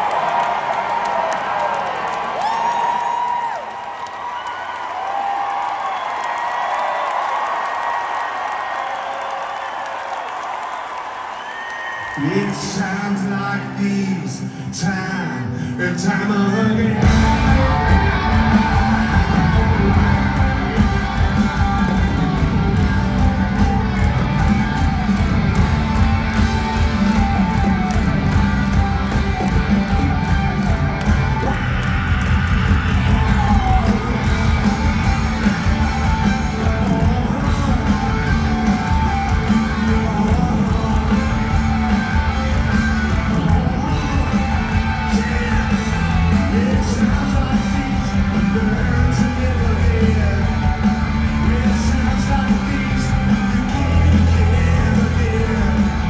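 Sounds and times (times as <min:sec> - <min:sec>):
crowd yelling: 0:00.0 - 0:14.9, 0:16.0 - 0:56.0
live rock band playing: 0:15.9 - 0:56.0.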